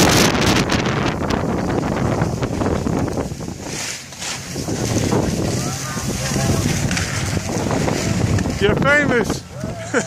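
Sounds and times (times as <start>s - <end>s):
wind buffeting microphone: 0.0s - 10.0s
faint voices: 4.5s - 10.0s.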